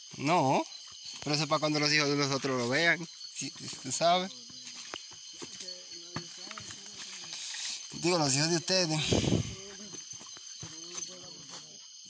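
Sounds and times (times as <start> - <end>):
crickets chirping: 0.0 - 12.0
footsteps on stony path: 0.0 - 12.0
faint voices: 1.3 - 11.9.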